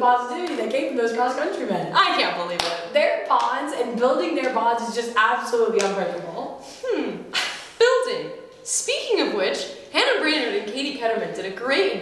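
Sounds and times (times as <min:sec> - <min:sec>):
sharp hand clap: 0:02.6 - 0:02.8.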